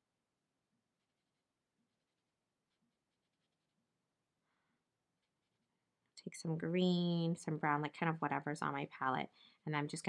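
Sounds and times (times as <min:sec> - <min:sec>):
paintbrush dabbing on paper: 0:00.4 - 0:05.9.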